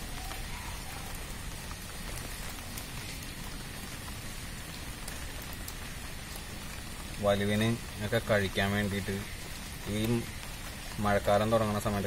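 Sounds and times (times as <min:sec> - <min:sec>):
steady rain falling: 0:00.0 - 0:12.0
water drips ticking: 0:00.0 - 0:12.0.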